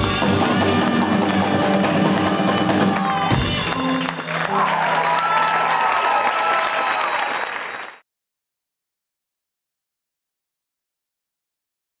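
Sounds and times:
live rockabilly band playing: 0.0 - 5.4
audience applause: 0.4 - 8.0
audience cheering: 1.0 - 8.0.

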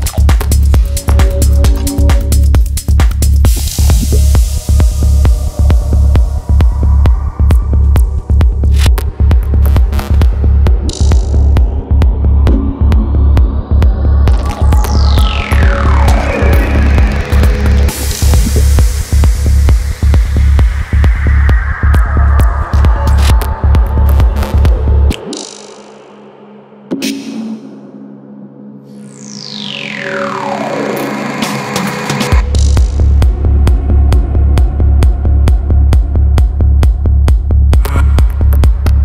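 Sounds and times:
kick-drum beat: 0.0 - 25.2, 32.3 - 39.0
deep pulsing bassline: 0.0 - 25.6, 29.0 - 39.0
noisy synth layer: 0.0 - 36.3.

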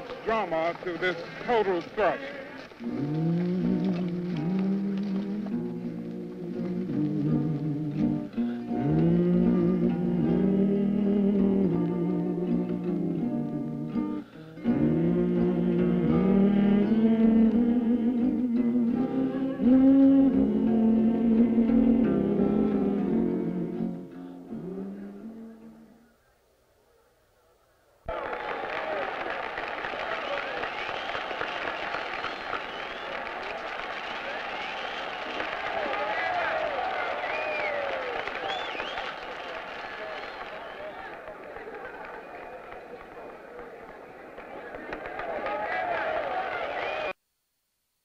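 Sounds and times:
scattered clapping: 0.0 - 5.6, 28.1 - 47.2
crowd cheering and shouting: 28.1 - 47.2.

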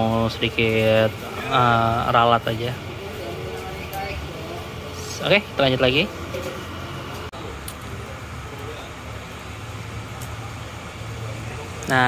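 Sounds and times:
bus engines humming: 0.0 - 12.0
distant voices: 0.0 - 12.0
traffic: 0.0 - 12.0.

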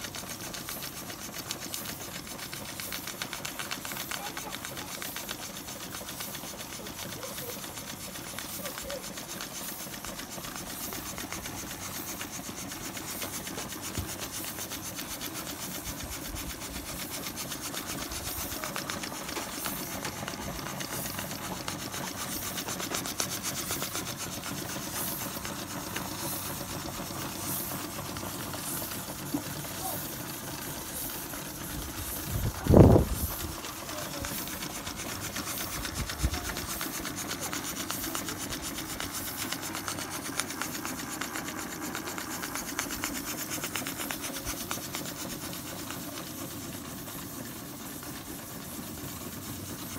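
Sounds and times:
hiss of escaping steam: 0.0 - 49.9
toy steam engines ticking: 0.0 - 49.9.

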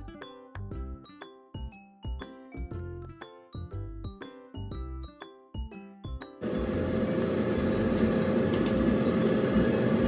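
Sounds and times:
background music: 0.0 - 10.0
air fryer fan whirring: 6.4 - 10.0.

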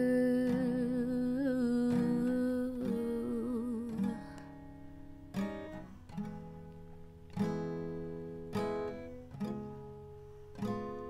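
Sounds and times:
woman humming: 0.0 - 4.2
acoustic guitar strum: 0.0 - 11.0.

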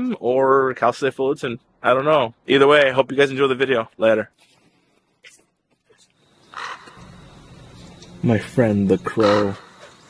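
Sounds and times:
low steady hum: 5.8 - 10.0
crow cawing: 6.5 - 7.3, 9.1 - 10.0.

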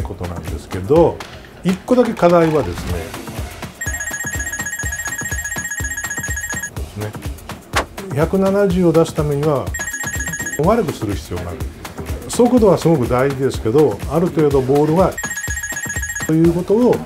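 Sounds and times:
background music with steady beat: 0.0 - 17.0
trilling electronic phone ring: 3.8 - 6.7, 9.8 - 10.6, 15.2 - 16.5.

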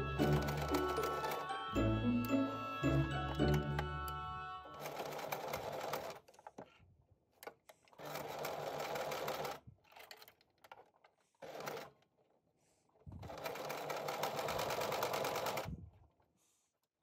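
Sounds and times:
sewing machine stitching: 0.0 - 1.6, 4.7 - 6.4, 7.8 - 12.0, 13.1 - 15.7.

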